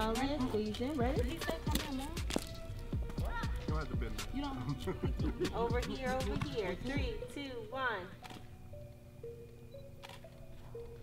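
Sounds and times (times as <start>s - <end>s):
faint background music: 0.0s - 11.0s.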